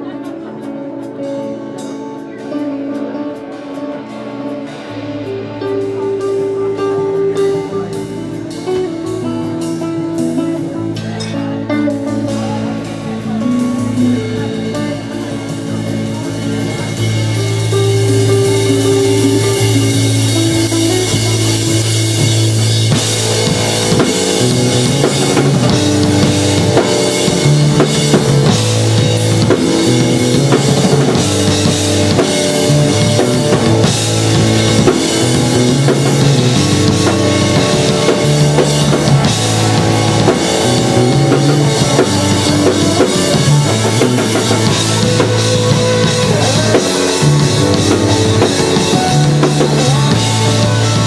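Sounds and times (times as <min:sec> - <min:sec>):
bass line: 0:00.0 - 0:51.0
live rock band playing: 0:00.0 - 0:51.0
drum hits: 0:15.8 - 0:51.0.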